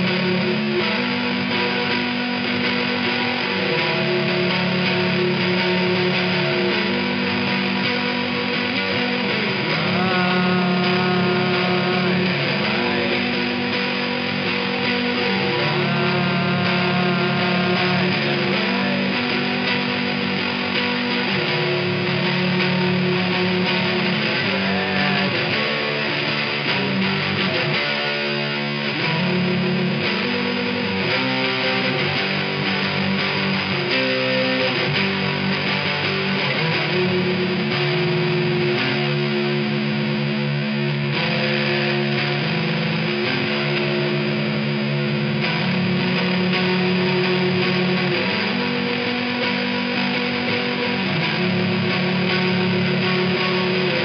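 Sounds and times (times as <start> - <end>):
fuzz electric guitar chords: 0.0 - 54.0.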